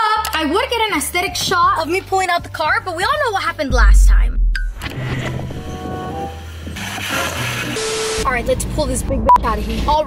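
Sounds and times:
background music: 0.0s - 9.2s
test-pattern beep: 3.7s - 4.9s
glitch sound effect: 3.7s - 6.5s.

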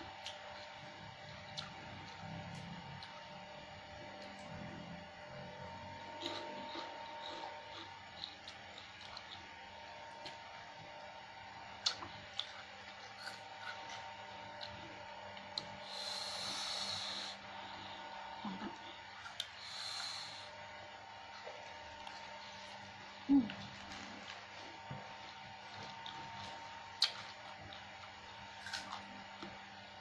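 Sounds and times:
faint steady hum: 0.0s - 30.0s
chewing: 0.2s - 3.3s, 6.0s - 10.5s, 11.8s - 15.8s, 23.5s - 29.6s.

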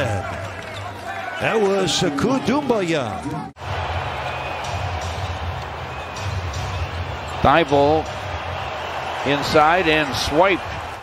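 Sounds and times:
crowd and court noise: 0.0s - 11.0s.

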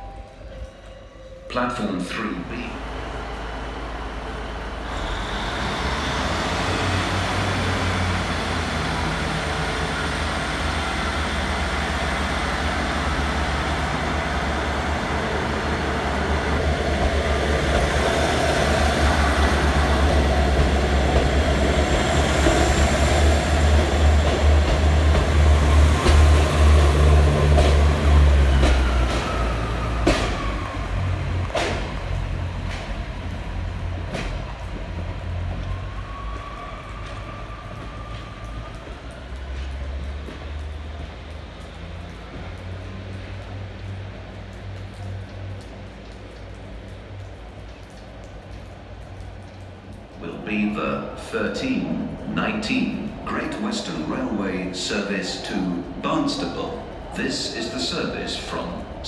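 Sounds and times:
diesel train engine rumbling: 0.0s - 59.0s.

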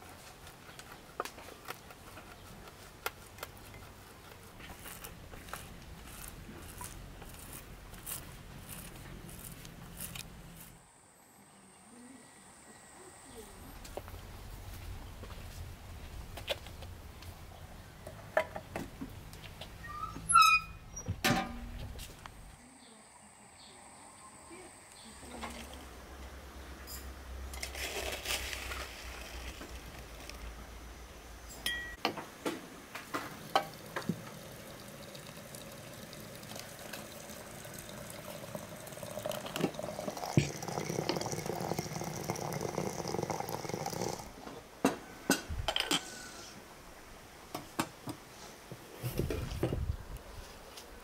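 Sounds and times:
china clinking: 31.5s - 32.0s
water pouring into teapot: 33.4s - 44.3s.

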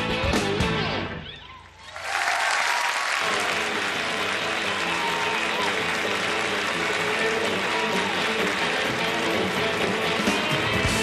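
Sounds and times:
country-rock band playing: 0.0s - 1.2s, 3.3s - 11.0s.

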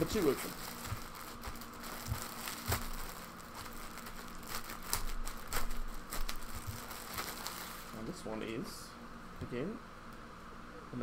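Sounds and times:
plastic bag crinkling: 0.0s - 8.2s.

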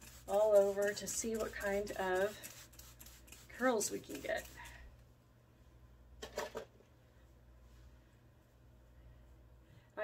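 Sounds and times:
trigger spray bottle spritzes: 0.0s - 4.7s.

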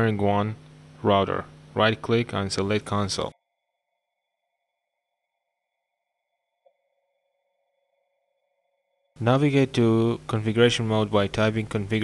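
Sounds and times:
faint hum of tones: 0.0s - 12.0s.

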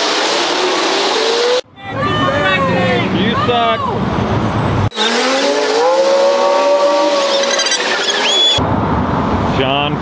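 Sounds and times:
traffic noise: 0.0s - 10.0s
vehicle engine accelerating: 4.1s - 9.6s.

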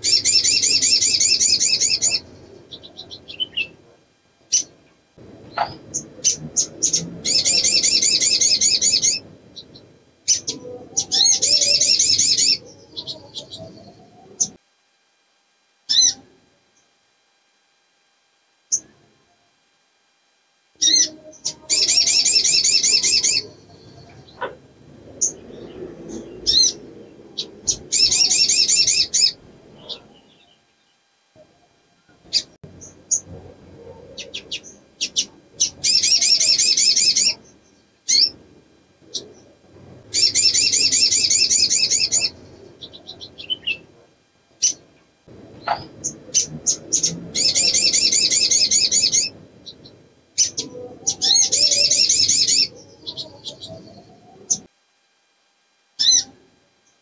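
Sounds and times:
bird chirps: 0.0s - 3.8s, 5.5s - 14.6s, 15.9s - 16.2s, 20.8s - 31.0s, 32.3s - 38.4s, 40.1s - 43.9s, 45.6s - 54.7s, 56.0s - 56.3s
bird trilled song: 0.0s - 3.8s, 5.5s - 14.6s, 15.9s - 16.2s, 20.8s - 24.5s, 25.2s - 31.0s, 34.2s - 38.4s, 40.1s - 43.9s, 45.6s - 54.7s, 56.0s - 56.3s.

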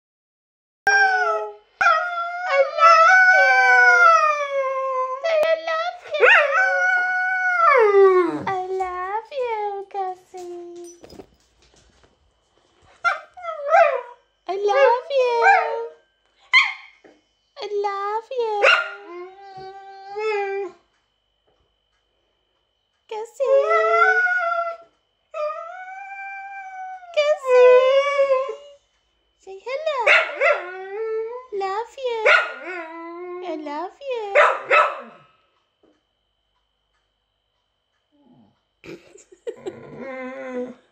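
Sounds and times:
dog whining: 39.6s - 40.9s.

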